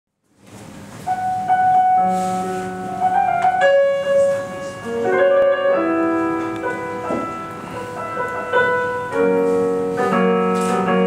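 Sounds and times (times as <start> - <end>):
digital piano playing: 0.8 - 11.0.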